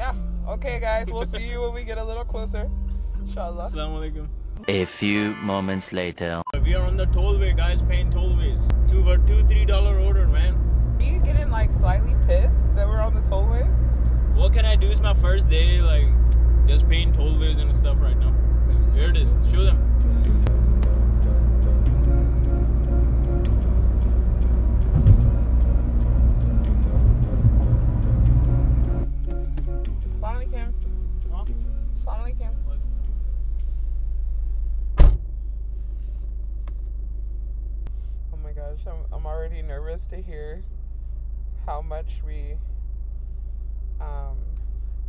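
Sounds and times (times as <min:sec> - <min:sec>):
idling car hum: 0:00.0 - 0:04.7, 0:06.5 - 0:45.0
car cabin road rumble: 0:06.6 - 0:45.0
car door shutting: 0:24.9 - 0:25.4, 0:29.2 - 0:29.8, 0:34.9 - 0:35.4.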